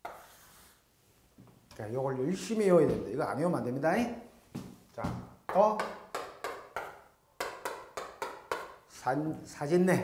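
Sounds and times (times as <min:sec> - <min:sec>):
chalk tapping on chalkboard: 0:00.0 - 0:00.5, 0:05.5 - 0:08.8.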